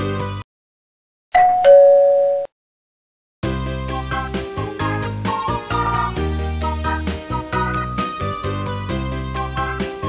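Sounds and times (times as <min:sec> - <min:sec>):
two-note doorbell chime: 0:01.4 - 0:02.5.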